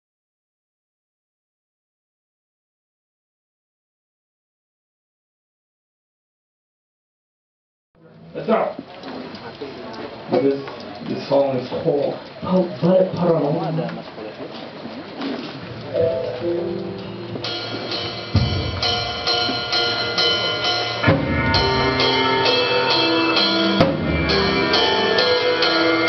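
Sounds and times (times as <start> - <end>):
sustained guitar notes: 15.8 - 26.0
drum kit beat: 15.9 - 26.0
bass guitar: 16.0 - 26.0.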